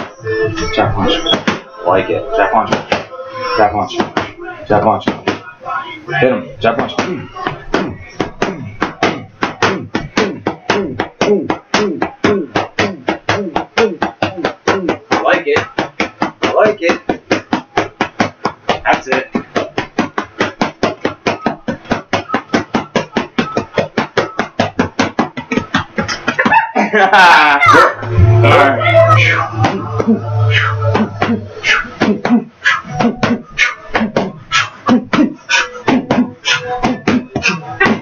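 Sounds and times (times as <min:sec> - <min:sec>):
boxing gloves slapping mitts: 0:06.7 - 0:26.4.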